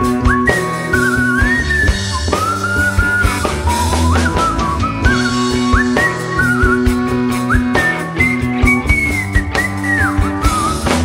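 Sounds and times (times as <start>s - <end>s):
bass: 0.0s - 11.0s
drums: 0.0s - 11.0s
lead guitar line sliding: 0.0s - 11.0s.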